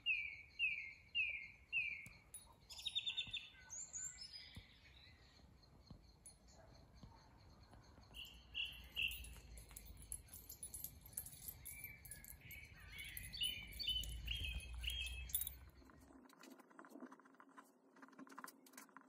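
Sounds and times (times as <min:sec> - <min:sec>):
songbird singing: 0:00.0 - 0:16.4.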